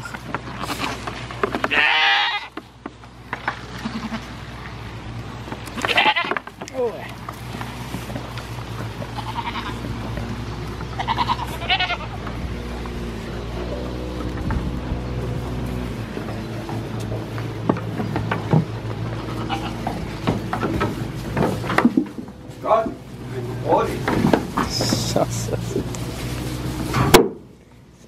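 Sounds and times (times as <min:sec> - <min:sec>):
goats bleating: 0:00.5 - 0:02.6, 0:03.6 - 0:04.4, 0:05.7 - 0:06.5, 0:08.8 - 0:14.2, 0:18.9 - 0:21.2.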